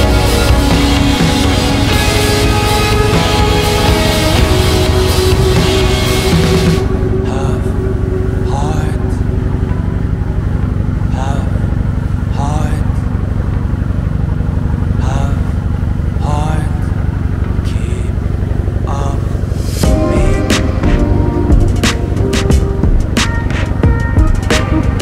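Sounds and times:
boat engine droning: 0:00.0 - 0:25.0
voices talking: 0:06.3 - 0:09.8.

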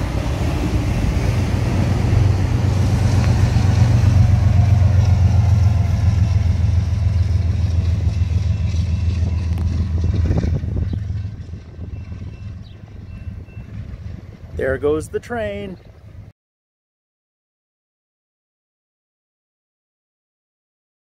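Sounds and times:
train wheels on rails: 0:00.0 - 0:14.6
diesel locomotive engine rumble: 0:00.0 - 0:16.3.

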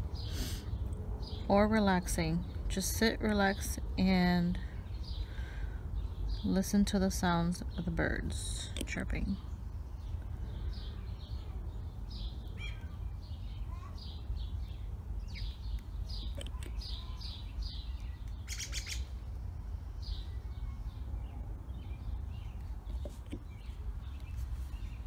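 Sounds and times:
birds chirping: 0:00.0 - 0:25.0
steady low rumble: 0:00.0 - 0:25.0.

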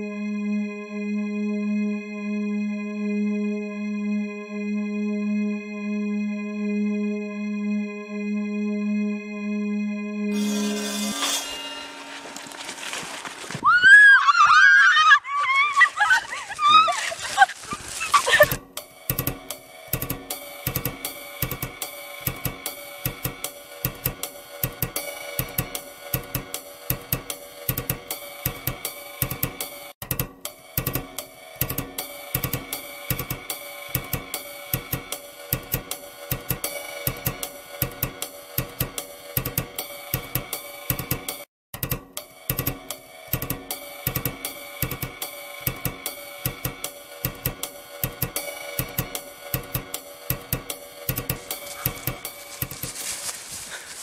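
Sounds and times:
drum kit beat with cymbals: 0:10.3 - 0:12.9, 0:18.2 - 0:54.0.

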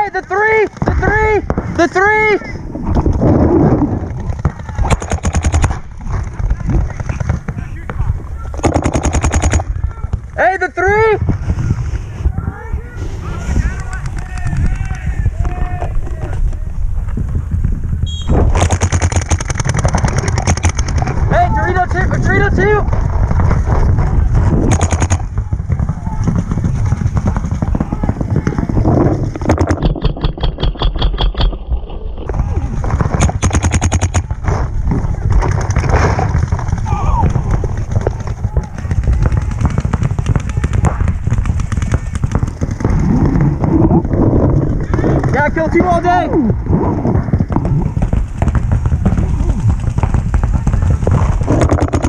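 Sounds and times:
paintball markers firing pops: 0:04.3 - 0:05.8, 0:08.6 - 0:09.7, 0:18.2 - 0:21.2, 0:24.6 - 0:25.4, 0:29.3 - 0:31.6, 0:33.0 - 0:34.4, 0:35.4 - 0:43.4, 0:47.3 - 0:52.0.

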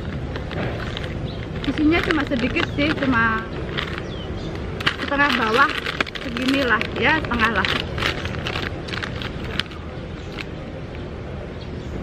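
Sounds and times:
foil snack bag crinkling: 0:00.0 - 0:10.5.

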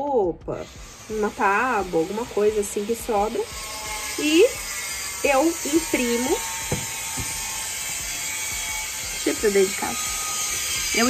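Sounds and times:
machine whirring: 0:00.6 - 0:11.0.

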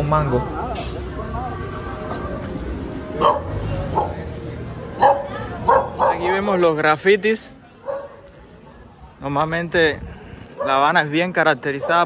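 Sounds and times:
dogs barking sharply: 0:03.2 - 0:04.2, 0:05.0 - 0:06.4.

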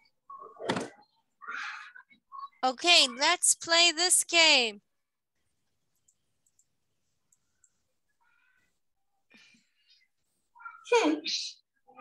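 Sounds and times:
faint clicks: 0:05.9 - 0:07.8.

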